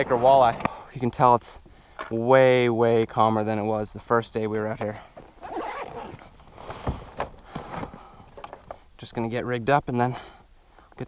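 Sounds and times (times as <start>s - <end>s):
fishing gear rustling and clicking: 4.7s - 8.9s.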